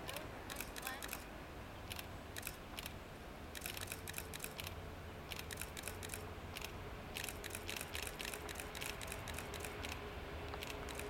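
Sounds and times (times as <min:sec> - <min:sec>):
camera shutters clicking: 0:00.5 - 0:01.2, 0:01.9 - 0:10.0, 0:10.6 - 0:11.0.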